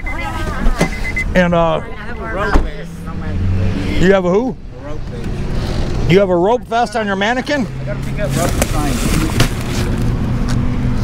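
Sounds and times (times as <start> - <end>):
people talking: 0.0 - 5.3
road traffic hum: 0.0 - 11.0.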